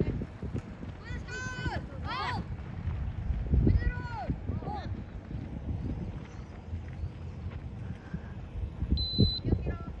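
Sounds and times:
distant voices: 0.0 - 10.0
wind buffeting microphone: 0.0 - 10.0.

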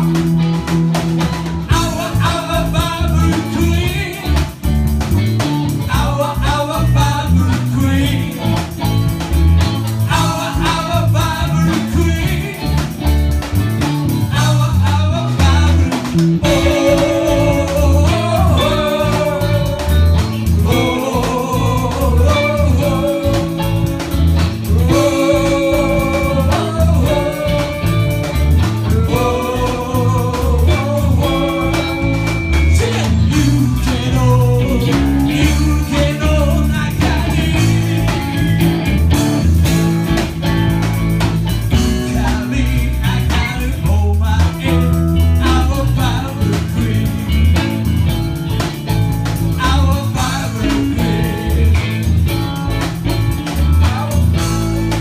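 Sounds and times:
bass guitar: 0.0 - 55.0
drum beat: 0.0 - 55.0
electric guitars: 0.0 - 55.0
live rock band playing: 0.0 - 55.0
person singing: 1.7 - 4.6, 10.1 - 12.9, 14.3 - 38.6, 41.9 - 47.6, 49.6 - 52.2.

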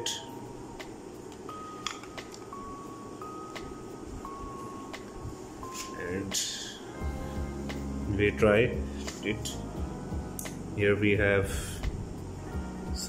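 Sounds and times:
soft music of held notes: 0.0 - 13.0.

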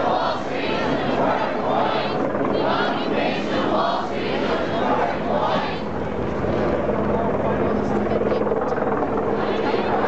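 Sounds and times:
helicopter rotor chop: 0.0 - 10.0
large crowd voices: 0.0 - 10.0.

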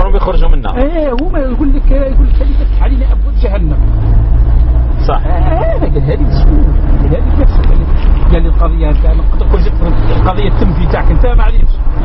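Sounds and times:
loud low rumble: 1.2 - 12.0.

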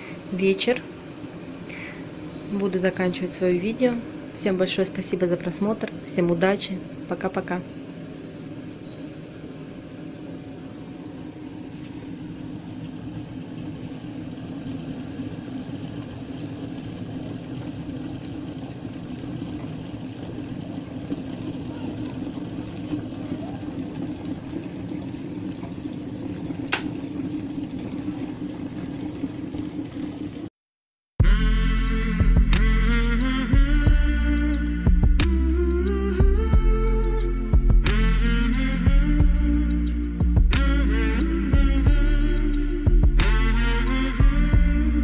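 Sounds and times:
electric kettle heating water: 0.0 - 30.5, 31.3 - 45.0
kettle switch click: 26.7 - 26.9.

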